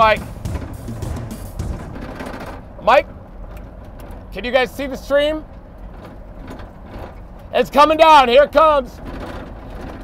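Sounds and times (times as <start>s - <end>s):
vehicle engine and road noise: 0.0s - 10.0s.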